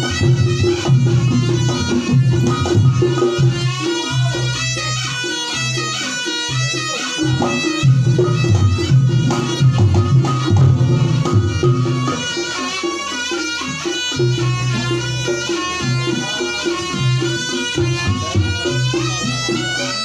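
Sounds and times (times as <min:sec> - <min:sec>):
hand drum rhythm: 0:00.0 - 0:20.0
reedy shawm melody: 0:00.0 - 0:20.0.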